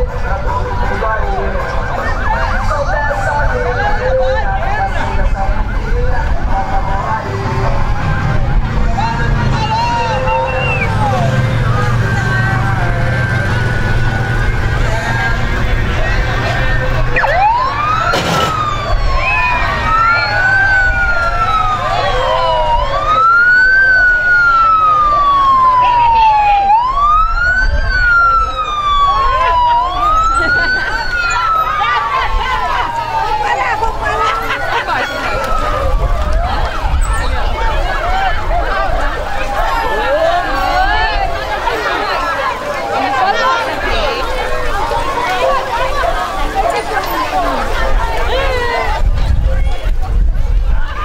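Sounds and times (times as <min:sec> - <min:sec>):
police car siren: 0:00.0 - 0:48.8
crowd voices: 0:00.0 - 0:51.0.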